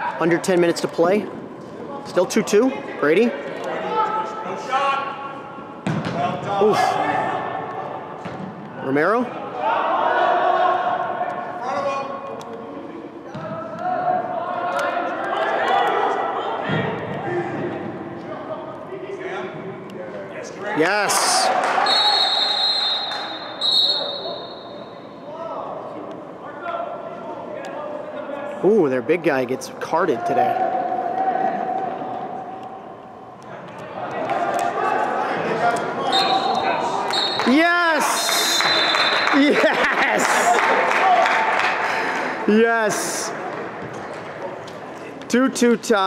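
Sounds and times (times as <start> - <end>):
soccer ball kicked hard: 5.8 - 6.3
referee's whistle blasts: 21.8 - 25.2, 36.1 - 37.6, 38.4 - 39.4
shouting voices: 34.0 - 41.3.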